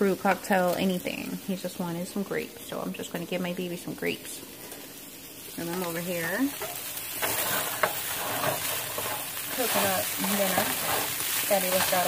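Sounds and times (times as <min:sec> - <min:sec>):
meat sizzling in a skillet: 0:00.0 - 0:12.0
spatula scraping and tapping pan: 0:06.5 - 0:12.0.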